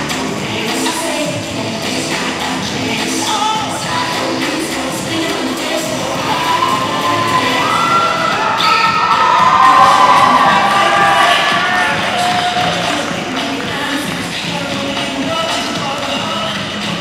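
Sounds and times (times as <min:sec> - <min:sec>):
music playing: 0:00.0 - 0:17.0
children cheering and shrieking: 0:06.1 - 0:13.0.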